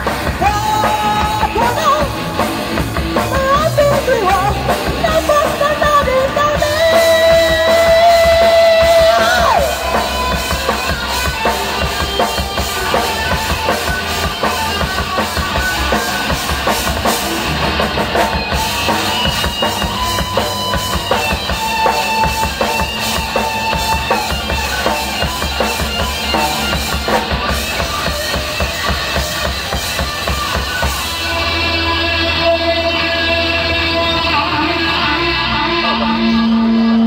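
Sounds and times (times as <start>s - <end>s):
bass guitar: 0.0s - 37.0s
drum kit: 0.0s - 37.0s
electric guitar lead: 0.0s - 37.0s.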